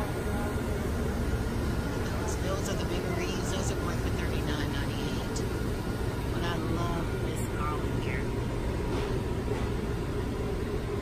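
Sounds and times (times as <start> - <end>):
low machinery rumble: 0.0 - 11.0.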